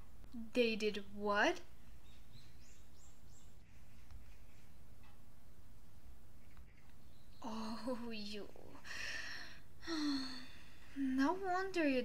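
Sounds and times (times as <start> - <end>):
woman gasping: 8.8 - 11.0
woman humming: 9.8 - 11.2.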